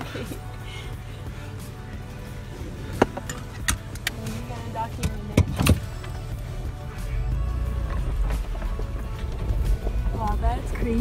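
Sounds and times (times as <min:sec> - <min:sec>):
engine and road rumble: 0:00.0 - 0:11.0
faint background music: 0:00.0 - 0:11.0.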